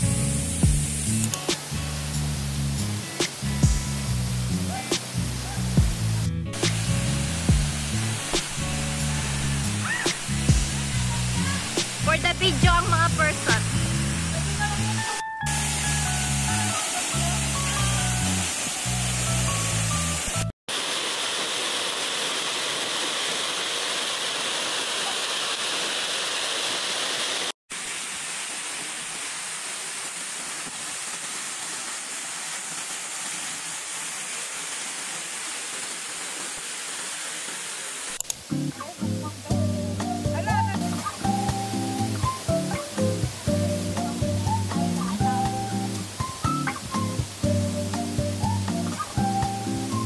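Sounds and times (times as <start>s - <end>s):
background music with a beat: 0.0s - 9.1s, 10.1s - 10.9s, 39.5s - 50.0s
waterfall rushing: 0.8s - 50.0s.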